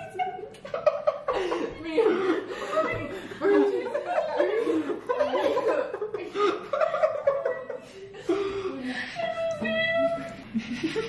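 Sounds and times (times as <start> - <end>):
people talking: 1.4 - 11.0.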